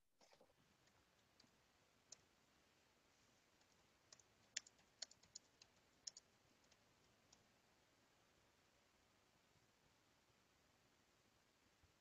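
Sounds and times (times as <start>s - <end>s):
computer keys clicking: 0.2s - 2.3s, 3.6s - 7.5s.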